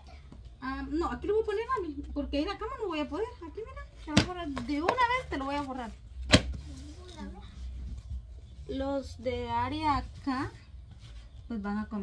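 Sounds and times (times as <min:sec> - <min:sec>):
sharp knock of notebook: 0:06.3 - 0:06.6.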